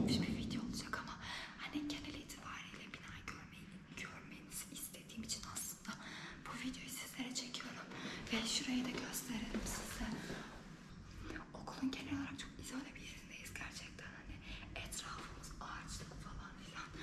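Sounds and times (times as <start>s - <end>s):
woman speaking quietly: 0.0s - 10.5s, 11.4s - 17.0s.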